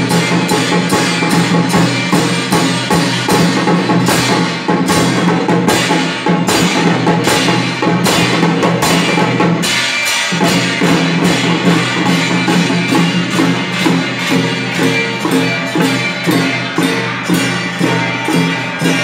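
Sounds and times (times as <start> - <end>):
drum beat: 0.0 - 19.0
gongs ringing: 0.0 - 19.0
hand cymbals clashing: 0.0 - 19.0.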